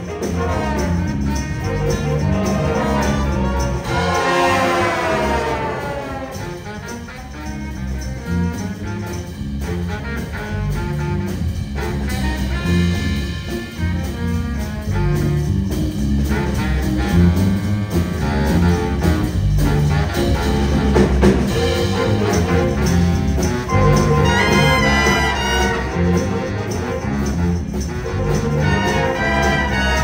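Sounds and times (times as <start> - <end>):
jazz big band playing: 0.0 - 30.0.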